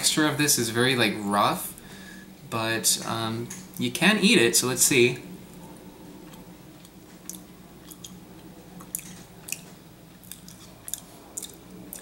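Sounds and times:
low room hum: 0:00.0 - 0:12.0
person chewing: 0:06.2 - 0:12.0.

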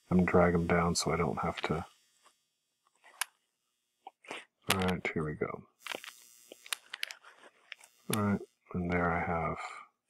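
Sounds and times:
room hiss: 0:00.0 - 0:02.3.

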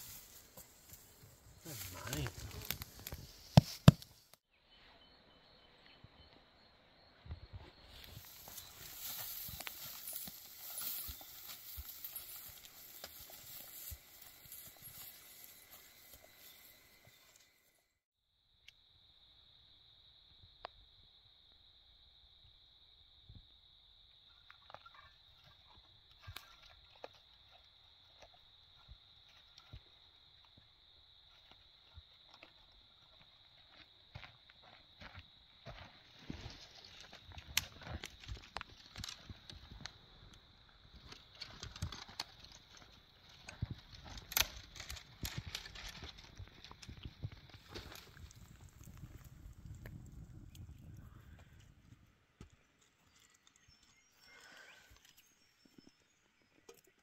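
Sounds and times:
twigs snapping and crackling: 0:01.8 - 0:04.4, 0:36.9 - 0:39.9, 0:41.0 - 0:50.7.

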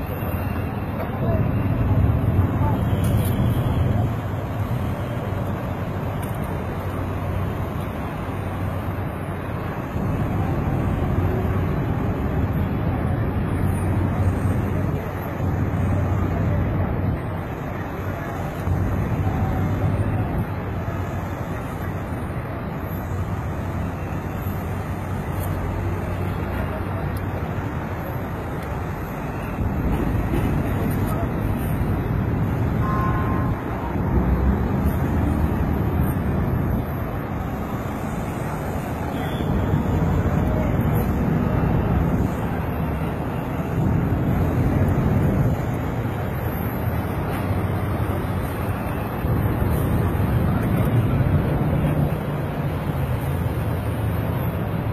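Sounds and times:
low rumble of road traffic: 0:00.0 - 0:54.9.

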